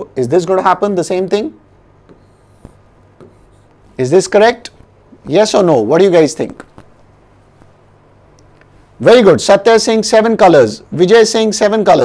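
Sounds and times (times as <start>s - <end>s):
pen tap: 2.1s - 3.4s.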